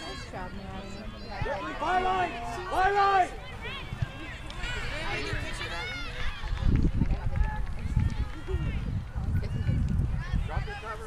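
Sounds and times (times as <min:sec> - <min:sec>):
people talking and calling: 0:00.0 - 0:11.0
wind rumble on microphone: 0:03.7 - 0:11.0.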